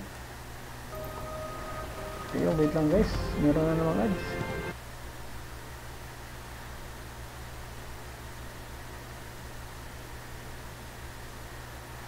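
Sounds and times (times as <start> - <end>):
faint low hum: 0.9 - 4.8
faint steady tone: 0.9 - 4.8.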